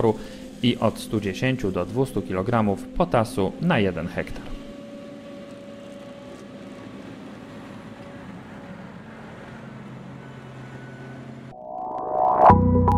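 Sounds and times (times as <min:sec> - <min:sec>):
forage harvester humming: 0:00.0 - 0:11.5
tractor: 0:04.7 - 0:11.5.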